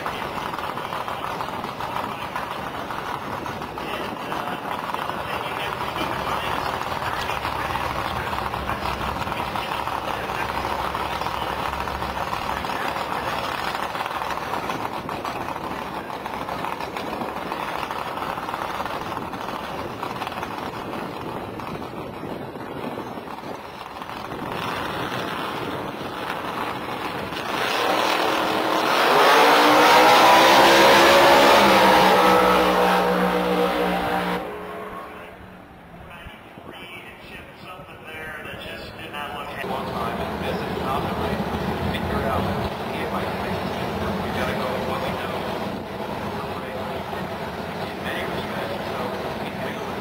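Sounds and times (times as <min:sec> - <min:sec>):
drag car engine idling and accelerating: 0:00.0 - 0:50.0.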